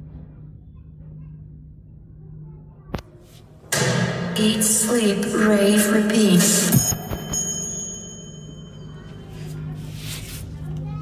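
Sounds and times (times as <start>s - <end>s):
music beat from speakers: 6.4s - 7.5s
high ringing chime tones: 6.6s - 9.6s.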